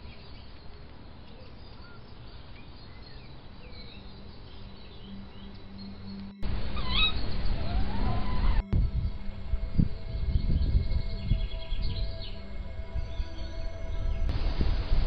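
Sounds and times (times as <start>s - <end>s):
birds chirping and singing: 0.0s - 14.3s
wind rumble on microphone: 4.9s - 15.0s.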